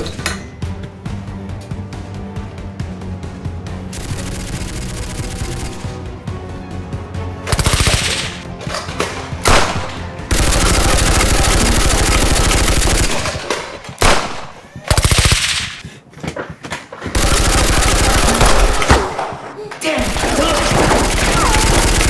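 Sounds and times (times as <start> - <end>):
background music: 0.0 - 22.0
automatic gunfire: 4.0 - 6.0, 7.5 - 8.5, 9.4 - 15.8, 17.2 - 19.3, 20.0 - 22.0.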